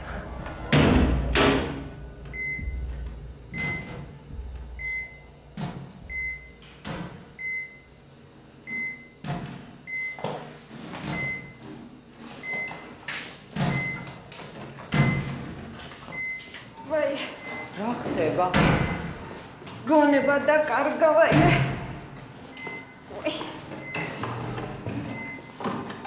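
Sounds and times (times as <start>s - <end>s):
patient monitor beeping: 2.2s - 5.4s, 6.0s - 8.0s, 8.6s - 9.2s, 9.8s - 13.0s, 13.6s - 14.3s, 14.9s - 19.2s, 20.0s - 20.7s, 22.4s - 25.6s.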